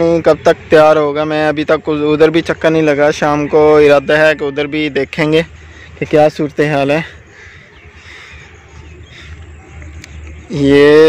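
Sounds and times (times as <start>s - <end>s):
faint bird calls: 4.0s - 11.0s.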